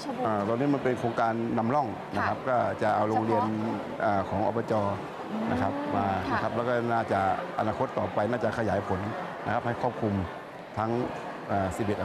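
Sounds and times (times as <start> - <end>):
man talking: 0.2 - 12.0.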